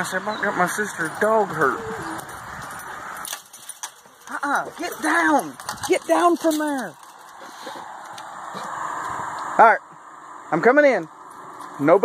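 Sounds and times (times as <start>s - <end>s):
sharp metallic clinks: 0.0s - 7.4s
chain-link fence rattling: 0.0s - 8.3s.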